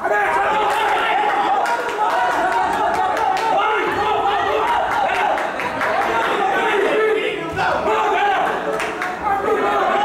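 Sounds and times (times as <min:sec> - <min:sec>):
crowd shouting and yelling: 0:00.0 - 0:10.0.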